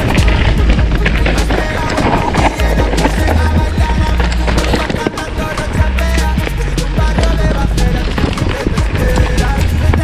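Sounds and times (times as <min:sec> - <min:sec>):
background music with bass line: 0:00.0 - 0:10.0
mountain bike rattling on rocky trail: 0:00.0 - 0:10.0.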